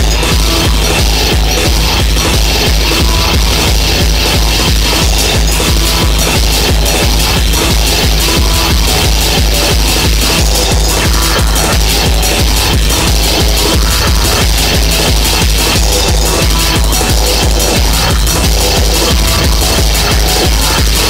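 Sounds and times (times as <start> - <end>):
fast kick drum: 0.0 - 21.0
hardcore techno music: 0.0 - 21.0.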